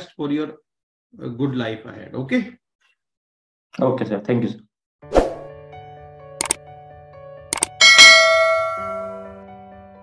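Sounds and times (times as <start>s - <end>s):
bright bell chime: 7.8s - 9.3s.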